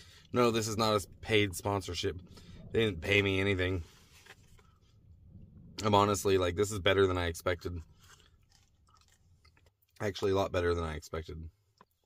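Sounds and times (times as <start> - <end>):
faint chewing: 7.6 - 10.3.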